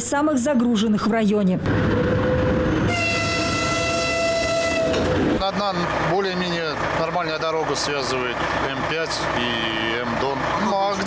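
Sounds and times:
approaching train noise: 1.6 - 10.8
train horn chord: 2.8 - 5.1.

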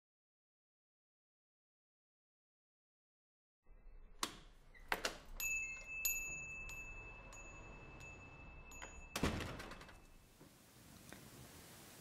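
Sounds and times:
door latch clicks: 4.2 - 5.4, 8.8 - 10.1
small bell jingling: 5.4 - 10.2
door shutting thud: 8.8 - 10.1.

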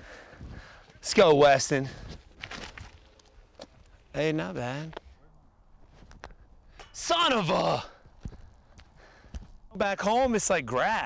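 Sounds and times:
faint footsteps and scuffs: 0.8 - 4.0, 5.8 - 6.5, 8.0 - 10.5.

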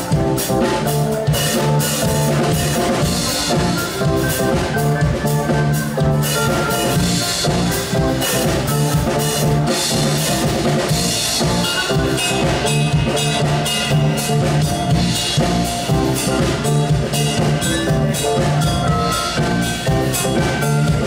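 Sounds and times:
drum kit steady beat: 0.0 - 21.0
electric bass: 0.0 - 21.0
electric guitar: 0.0 - 21.0
keyboard: 0.0 - 21.0.

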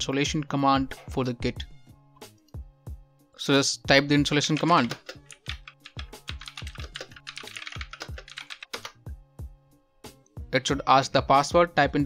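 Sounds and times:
soft background music: 0.0 - 12.0
typing on a keyboard: 4.4 - 9.0.

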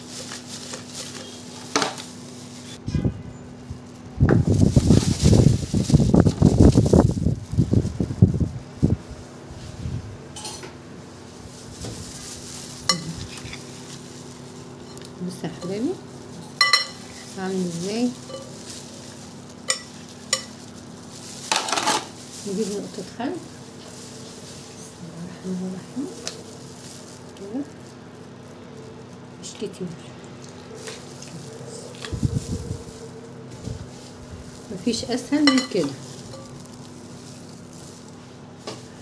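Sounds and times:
rustling and handling noises: 0.0 - 39.0
metal spoon clinking on glass bowl: 16.6 - 17.0, 35.4 - 36.6.

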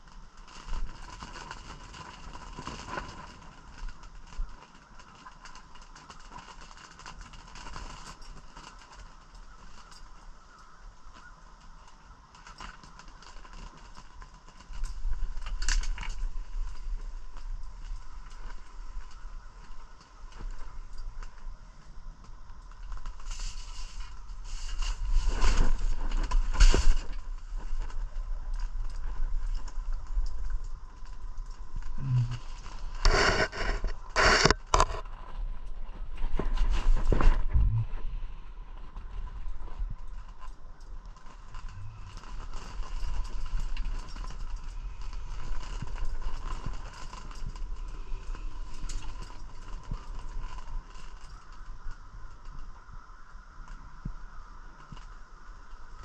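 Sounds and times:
faint hum and whine: 0.0 - 56.0
rustles and scrapes of handling: 0.0 - 56.0
low rumble: 33.8 - 40.2.

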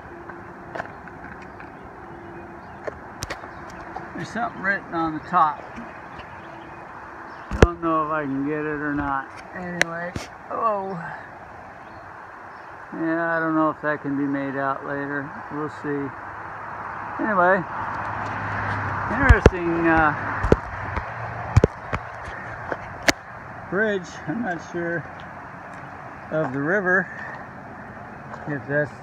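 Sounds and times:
quiet outdoor background noise: 0.0 - 29.0
footsteps on wooden planks: 0.2 - 4.4, 17.9 - 23.2
man talking: 4.1 - 5.7, 7.6 - 11.3, 12.9 - 16.2, 17.2 - 17.7, 19.0 - 20.4, 23.7 - 25.1, 26.3 - 27.4, 28.4 - 29.0.

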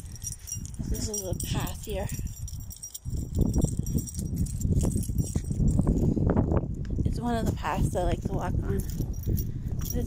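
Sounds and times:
light metallic jingling: 0.0 - 7.1, 8.0 - 10.0
microphone handling noise: 0.0 - 10.0
rumbling wind on microphone: 0.0 - 10.0.

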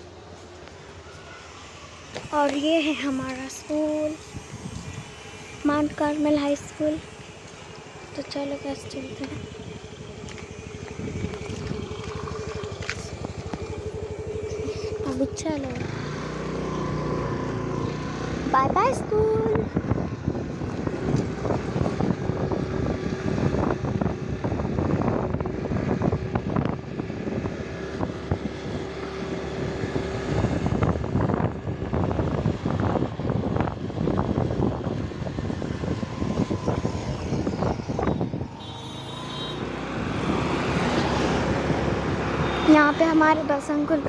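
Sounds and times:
vehicle road and engine noise: 0.0 - 44.0
wind buffeting microphone: 2.2 - 38.6.

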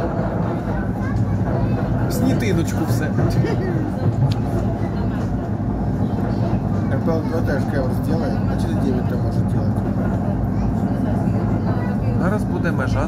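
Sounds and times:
train rumbling inside carriage: 0.0 - 13.0.

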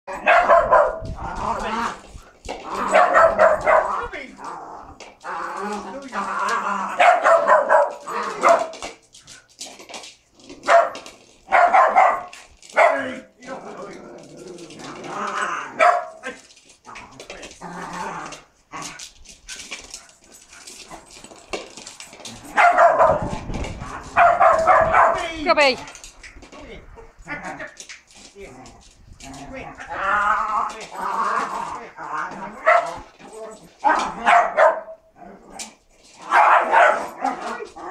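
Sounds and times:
small dogs barking: 0.1 - 1.1, 2.7 - 4.1, 6.9 - 8.8, 10.6 - 13.2, 15.7 - 16.2, 22.5 - 25.2, 32.5 - 33.0, 33.8 - 35.1, 36.2 - 37.9.

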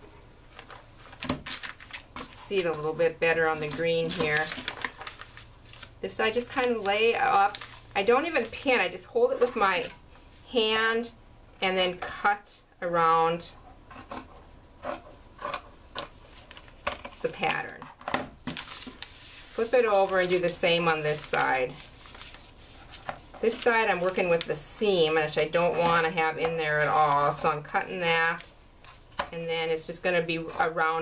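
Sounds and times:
fabric and paper rustling: 0.5 - 10.4, 16.2 - 29.1.

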